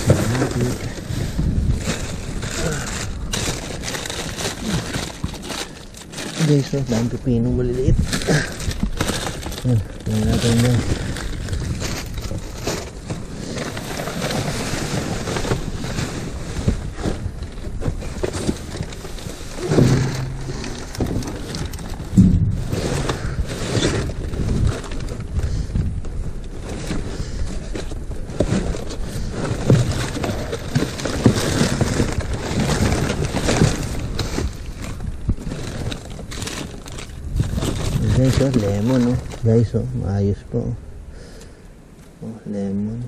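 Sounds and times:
cardboard boxes scraping: 0.0s - 7.4s, 8.0s - 25.5s, 26.6s - 39.4s
plastic bags crinkling: 0.0s - 25.5s, 26.5s - 39.6s.

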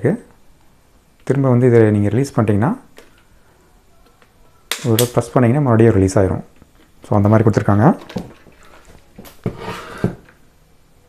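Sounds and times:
person talking: 4.0s - 8.2s.

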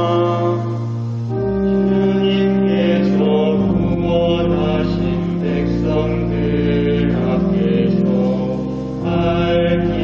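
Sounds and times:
organ holding low chords: 0.0s - 10.0s
person chanting psalm: 0.0s - 10.0s.

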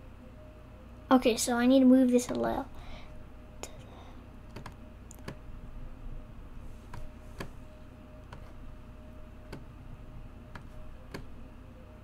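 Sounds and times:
computer keyboard keystrokes: 4.5s - 5.4s, 10.5s - 11.3s.

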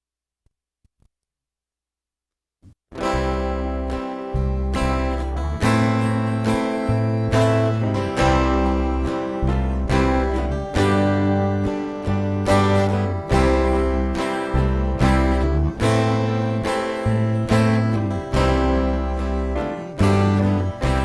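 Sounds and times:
acoustic guitar strumming chords: 3.0s - 21.0s.

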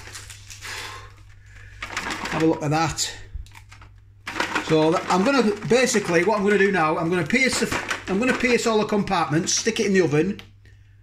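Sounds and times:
plastic crinkling rustle: 0.0s - 9.9s.

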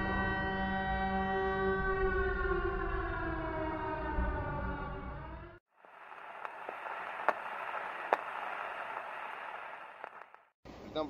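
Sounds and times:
air-raid siren winding down: 1.2s - 5.6s.

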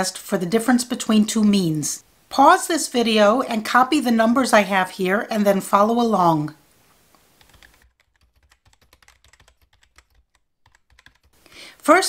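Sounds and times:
keyboard typing: 7.4s - 11.4s.

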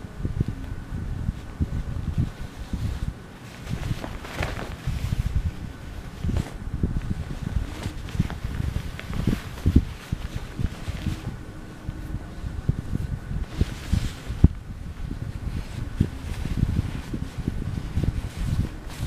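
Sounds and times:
fabric rustling: 0.0s - 19.0s.

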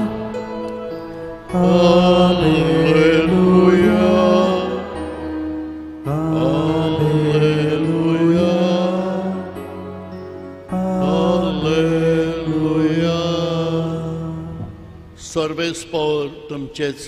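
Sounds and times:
slow hymn singing: 0.0s - 17.0s.

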